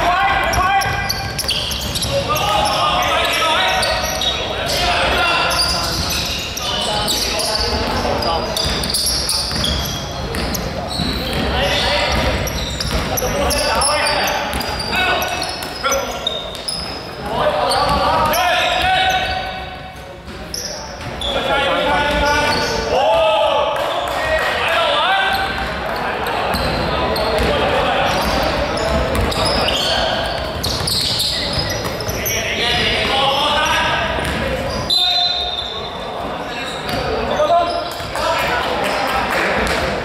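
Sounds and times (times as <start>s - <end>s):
players shouting: 0.0s - 10.0s
ball bouncing on wooden court: 0.4s - 2.2s, 7.6s - 16.9s, 26.5s - 33.1s, 33.8s - 34.8s.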